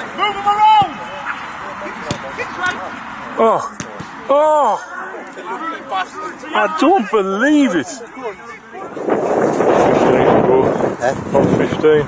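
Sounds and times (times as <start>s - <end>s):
faint voices: 0.0s - 12.0s
wind buffeting microphone: 8.7s - 12.0s.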